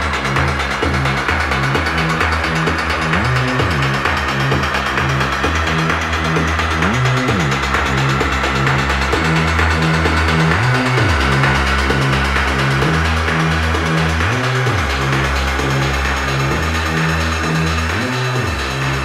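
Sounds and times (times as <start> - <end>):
deep synth bass pattern: 0.0 - 19.0
swooping pitch glides: 0.7 - 19.0.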